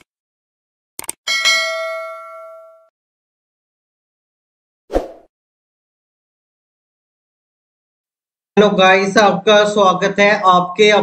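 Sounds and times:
notification bell ding: 1.3s - 2.9s.

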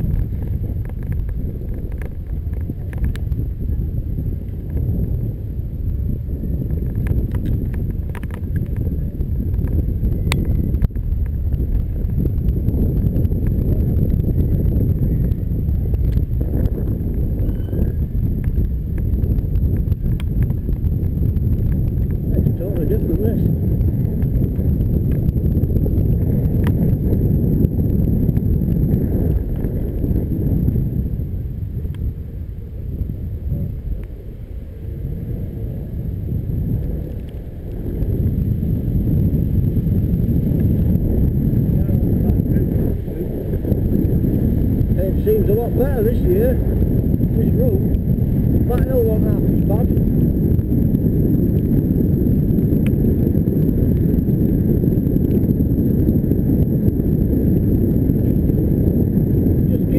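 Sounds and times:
wind and road rumble on microphone: 0.0s - 59.9s.

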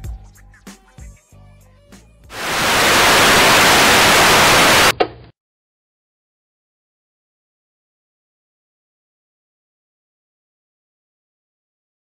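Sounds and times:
television static hiss: 2.3s - 4.9s.

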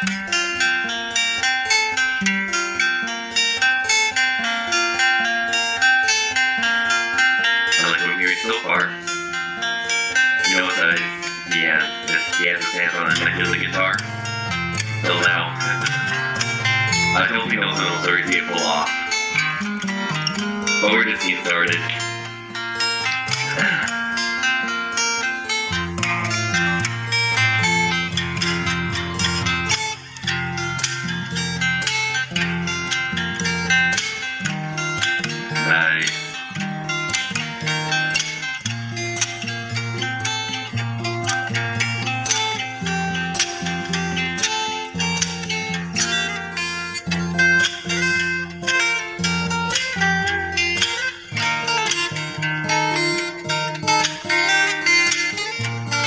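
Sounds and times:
fingerstyle acoustic guitar: 0.0s - 56.0s
percussive strikes on guitar: 0.0s - 56.0s.

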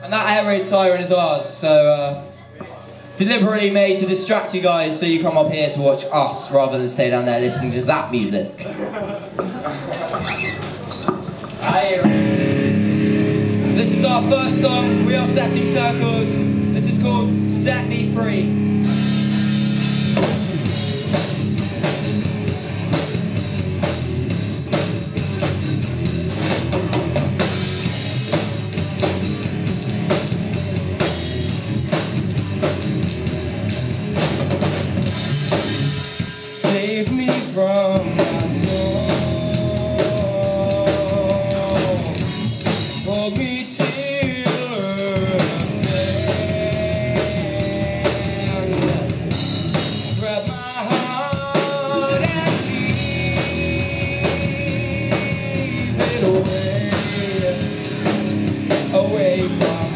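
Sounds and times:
electric guitars: 9.3s - 59.9s
bass guitar: 10.0s - 59.9s
bending melody line: 11.7s - 34.6s.

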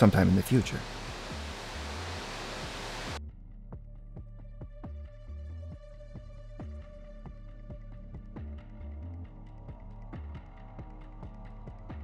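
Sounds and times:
television static hiss: 0.0s - 3.2s
pulsing background music: 0.0s - 12.0s.

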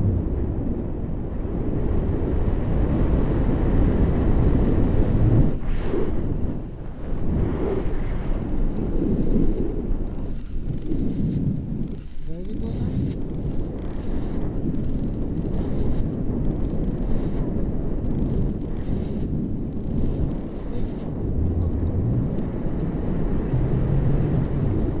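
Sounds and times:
wind rushing over microphone: 0.0s - 25.0s.

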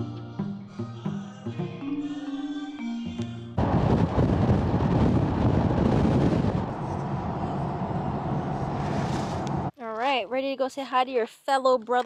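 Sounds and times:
wind buffeting microphone: 3.6s - 9.7s
road noise from moving car: 3.6s - 9.8s.

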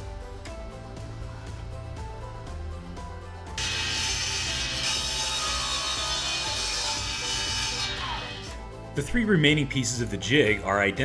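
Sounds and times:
background music: 0.0s - 11.0s
table saw cutting wood: 3.6s - 8.6s.

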